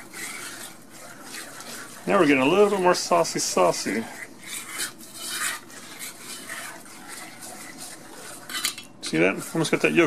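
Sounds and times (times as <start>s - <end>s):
utensil scraping batter in a pan: 0.0s - 10.0s.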